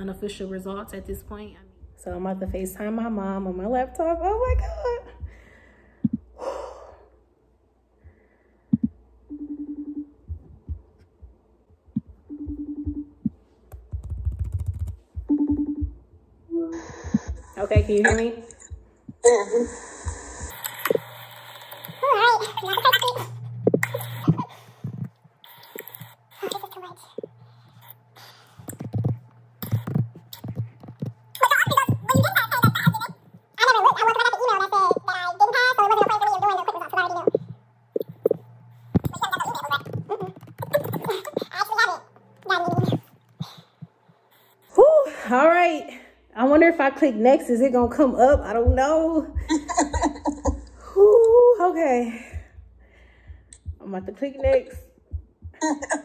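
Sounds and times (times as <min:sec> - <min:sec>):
steady low hum: 0:00.0 - 0:56.0
woman's high wavering voice: 0:16.5 - 0:18.5, 0:22.0 - 0:24.5, 0:31.4 - 0:37.6, 0:39.0 - 0:43.6
handling noise: 0:27.1 - 0:33.5.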